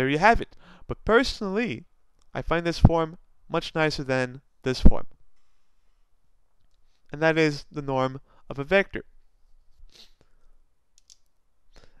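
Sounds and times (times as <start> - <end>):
low steady background hum: 0.0 - 12.0.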